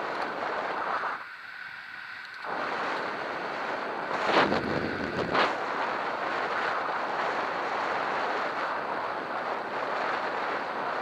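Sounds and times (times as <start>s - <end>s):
wind rushing over microphone: 0.0s - 11.0s.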